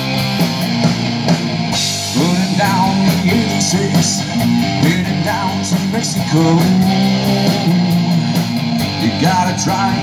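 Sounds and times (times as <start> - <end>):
bass guitar: 0.0 - 10.0
drums with cymbals: 0.0 - 10.0
electric guitar: 0.0 - 10.0.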